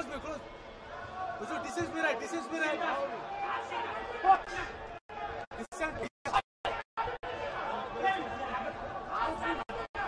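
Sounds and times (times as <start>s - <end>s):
arena crowd murmur: 0.0s - 6.0s, 6.7s - 10.0s
voices calling out and chattering: 0.0s - 10.0s.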